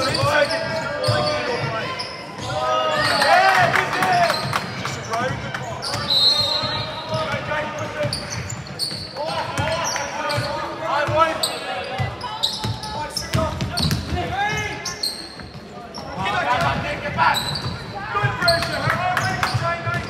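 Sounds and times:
shoes squeaking on floor: 0.0s - 3.4s, 4.1s - 20.0s.

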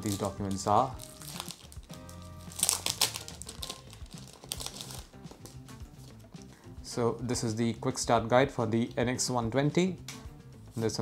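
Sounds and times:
paper crinkling and rustling: 0.0s - 5.6s
background music: 0.0s - 11.0s.

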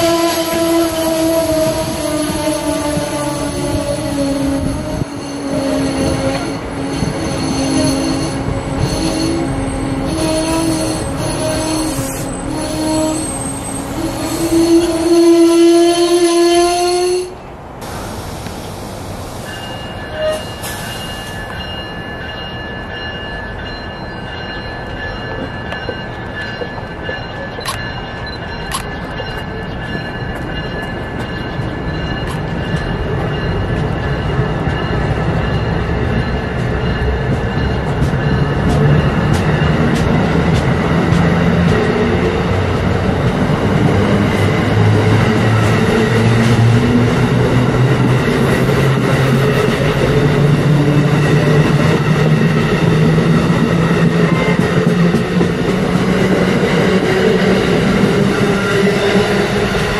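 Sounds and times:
train rolling past: 0.0s - 59.9s.

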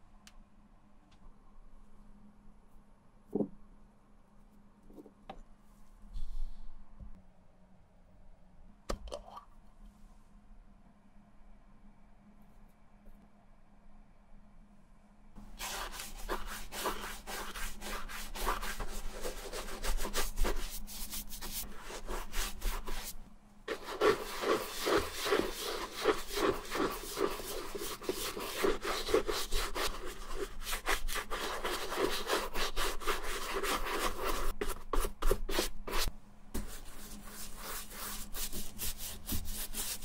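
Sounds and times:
brush scrubbing leather: 15.6s - 40.0s.

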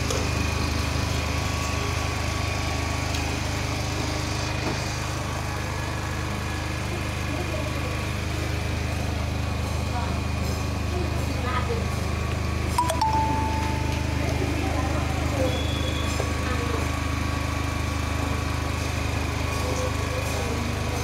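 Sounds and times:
generator engine hum: 0.0s - 21.0s.

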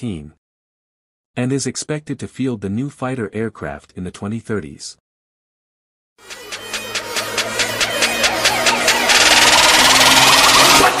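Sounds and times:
fast mechanical rattle: 6.2s - 11.0s.

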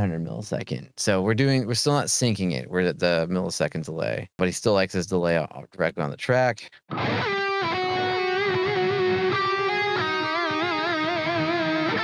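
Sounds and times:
lead electric guitar melody: 6.9s - 12.0s.

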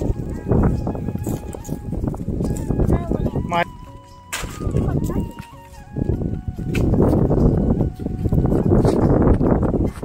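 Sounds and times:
people talking outdoors: 0.0s - 9.8s.

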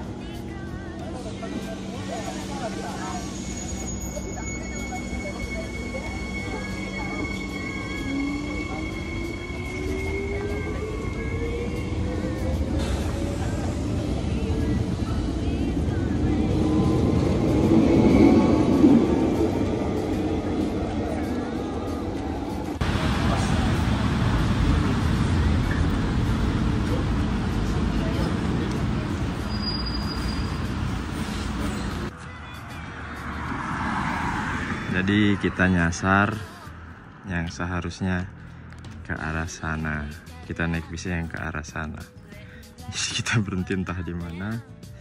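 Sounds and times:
bus station noise: 0.0s - 45.0s.

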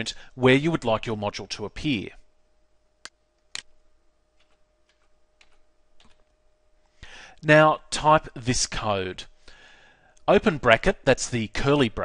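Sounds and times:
faint steady hum: 0.0s - 12.0s
keyboard keystrokes: 4.4s - 6.3s.

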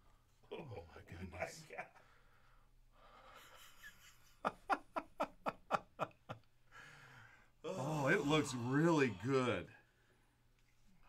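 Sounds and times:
faint breathing: 2.0s - 3.8s, 6.6s - 8.2s.

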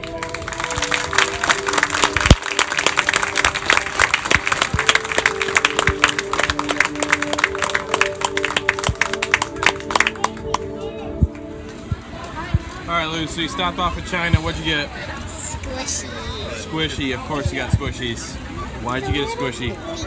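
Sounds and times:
audience clapping: 0.0s - 11.5s
background music with held notes: 0.0s - 15.6s.

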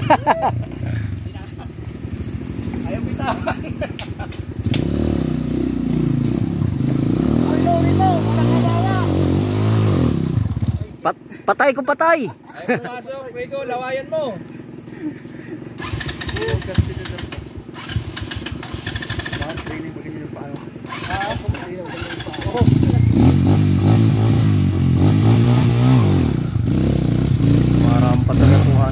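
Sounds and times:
motorcycle engine climbing hill: 0.0s - 11.5s, 13.2s - 28.9s.

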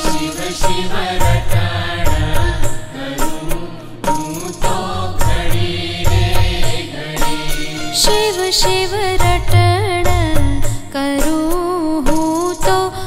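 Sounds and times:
chant-like devotional singing: 0.0s - 10.8s
deep drum beats: 0.0s - 11.5s
instrumental backing: 0.0s - 13.0s.

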